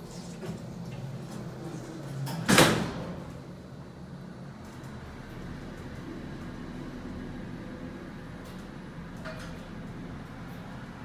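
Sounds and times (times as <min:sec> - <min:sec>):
elevator doors closing with bang: 0:00.0 - 0:11.0.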